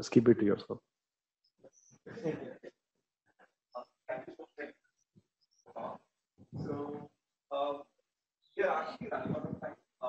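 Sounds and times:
faint muffled voices: 6.6s - 7.0s, 8.6s - 9.8s.

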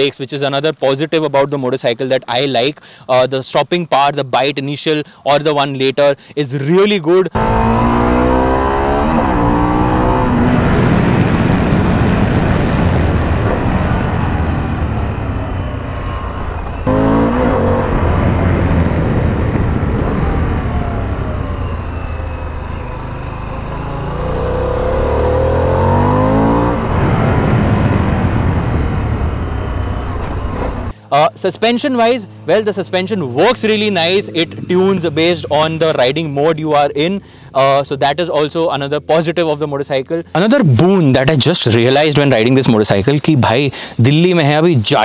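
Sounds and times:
wind rushing: 7.4s - 23.2s, 24.2s - 30.9s
motorcycle engine revving: 7.4s - 30.9s.

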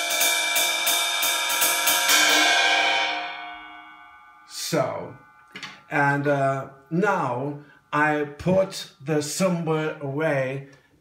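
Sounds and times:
crash cymbal struck: 0.0s - 6.0s.

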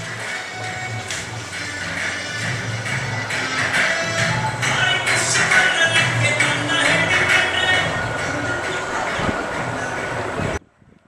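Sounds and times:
background music: 0.0s - 10.6s.

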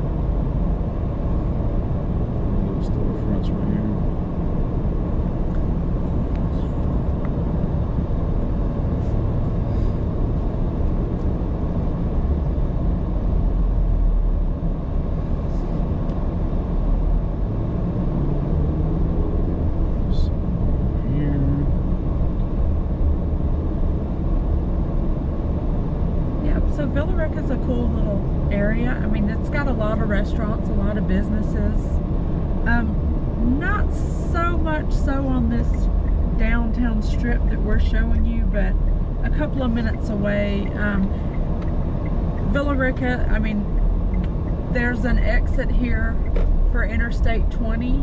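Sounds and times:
car engine and tyres rumbling: 0.0s - 48.0s.

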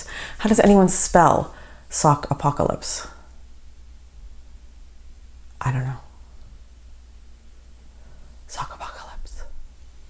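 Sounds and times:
low room hum: 0.0s - 10.0s
woman whispering: 8.5s - 9.6s.

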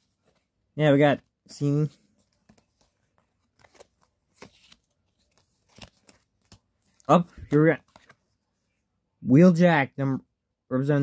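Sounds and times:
playing cards tapping and rustling: 1.9s - 8.3s.

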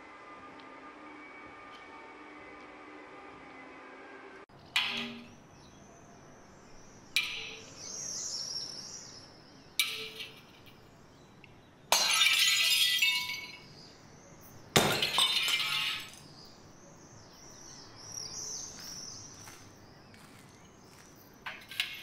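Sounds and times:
glass breaking: 11.9s - 13.7s, 14.8s - 16.3s
glass fragments tinkling: 11.9s - 13.8s, 14.8s - 16.3s.

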